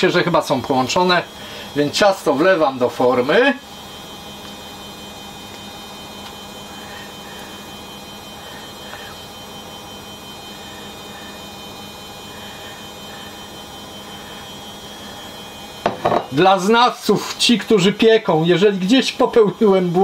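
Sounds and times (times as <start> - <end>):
electrical hum and hiss: 0.0 - 20.0.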